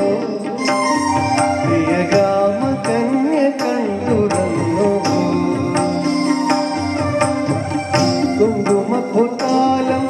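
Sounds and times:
man singing into a microphone: 0.0s - 7.2s, 8.0s - 10.0s
instrumental accompaniment with beat: 0.0s - 10.0s.

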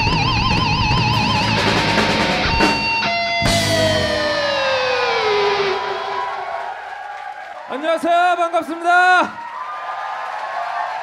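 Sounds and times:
electric guitar sustained sliding note: 0.0s - 6.0s.

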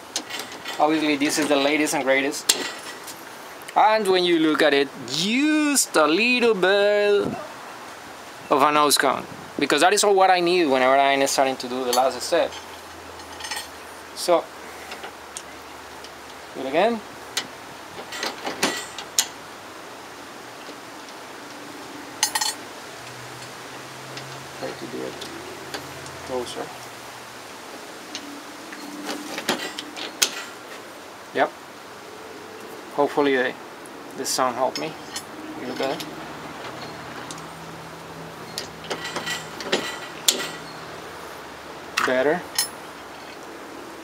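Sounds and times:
metallic clicks and clinks: 38.4s - 40.8s, 42.0s - 43.4s.

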